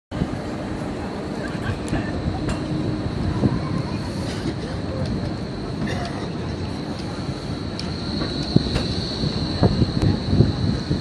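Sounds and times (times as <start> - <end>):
tram low rumble: 0.1 - 11.0
tram wheel squeal: 0.2 - 11.0.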